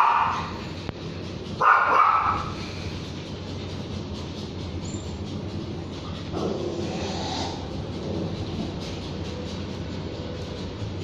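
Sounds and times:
dog barking: 0.0s - 0.5s, 1.6s - 2.6s.

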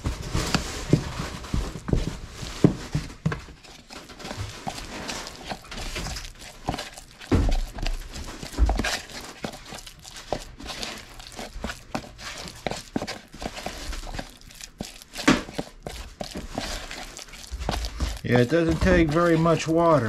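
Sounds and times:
stick scraping wet mix: 0.0s - 20.0s.

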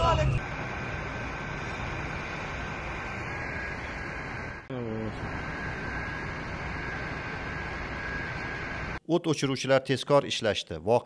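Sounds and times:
outdoor background noise: 0.0s - 9.0s.

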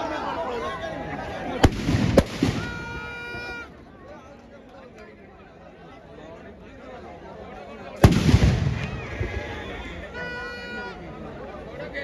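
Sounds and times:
crowd voices: 0.0s - 12.0s
firecrackers banging: 1.6s - 3.2s, 8.0s - 9.5s.

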